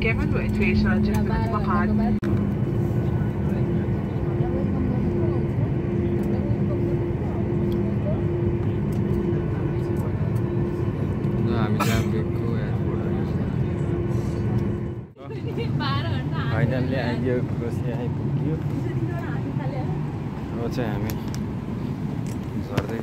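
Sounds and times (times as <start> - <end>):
jet engines rumbling: 0.0 - 23.0.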